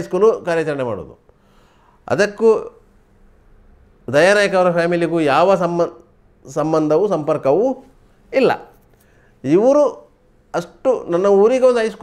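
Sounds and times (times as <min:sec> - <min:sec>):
man talking: 0:00.0 - 0:01.2, 0:02.1 - 0:02.8, 0:04.1 - 0:08.8, 0:09.4 - 0:12.0.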